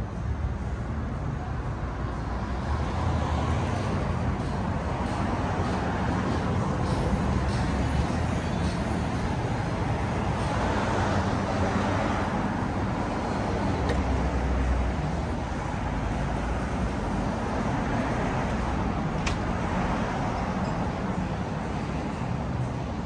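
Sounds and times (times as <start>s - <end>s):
city street traffic: 0.0s - 23.0s.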